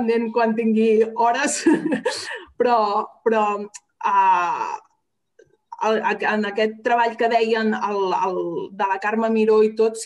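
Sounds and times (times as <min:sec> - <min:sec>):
woman talking: 0:00.0 - 0:05.0, 0:05.7 - 0:10.0.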